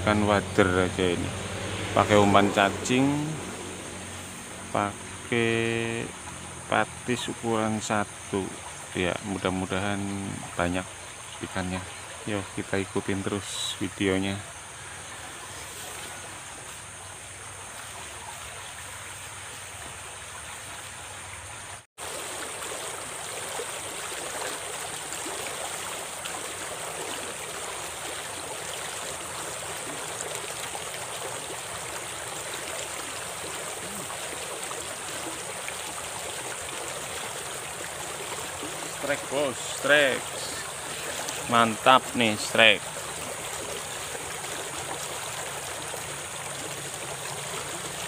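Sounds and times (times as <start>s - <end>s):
stream water rushing: 0.0s - 48.0s.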